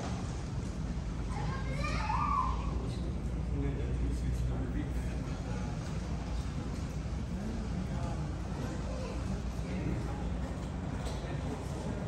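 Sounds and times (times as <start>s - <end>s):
steady low hum: 0.0s - 12.0s
background chatter: 1.1s - 12.0s
child calling out: 1.3s - 2.8s.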